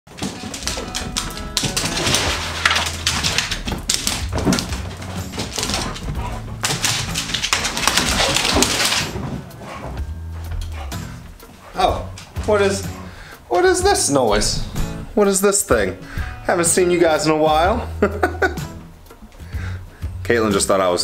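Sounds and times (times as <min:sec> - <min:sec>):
dogs play-fighting: 0:00.1 - 0:13.2.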